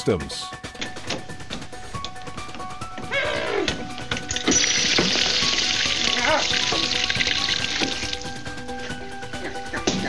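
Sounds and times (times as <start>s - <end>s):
water spraying from broken pipe: 4.1s - 8.4s.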